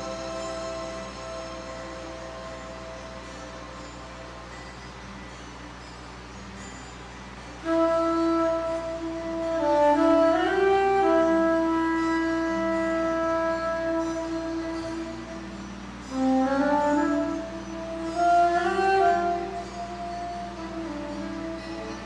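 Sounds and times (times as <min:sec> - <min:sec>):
solo wind instrument melody: 0:00.0 - 0:22.0.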